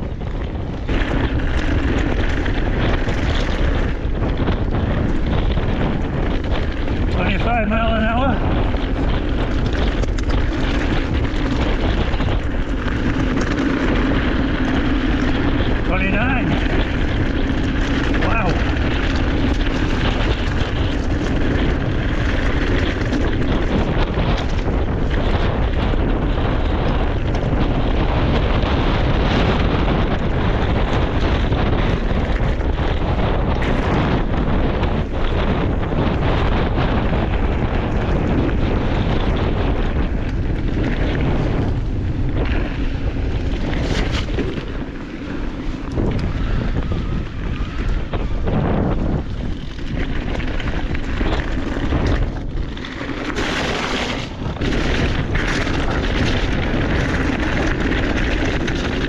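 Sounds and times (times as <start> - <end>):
bike tyres rolling on gravel: 0.0 - 59.0
wind buffeting microphone: 0.0 - 59.0.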